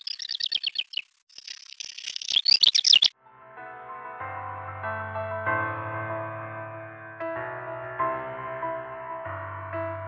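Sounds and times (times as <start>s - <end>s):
bird singing: 0.0s - 3.2s.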